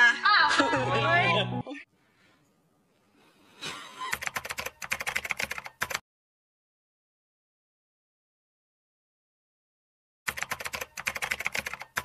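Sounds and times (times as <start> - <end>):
rapid keyboard-like clicks: 4.1 - 6.0, 10.3 - 12.0.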